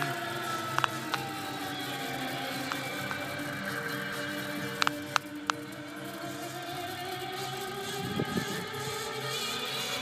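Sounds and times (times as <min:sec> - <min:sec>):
music from car stereo: 0:00.0 - 0:10.0
sharp clicks: 0:00.7 - 0:01.3, 0:04.7 - 0:05.7.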